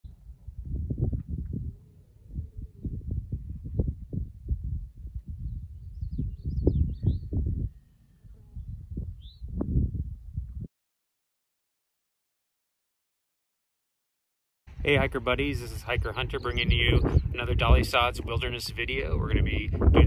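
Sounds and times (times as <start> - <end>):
wind buffeting microphone: 0.1 - 10.7, 14.7 - 20.0
bird chirping: 5.4 - 9.6, 14.7 - 18.0.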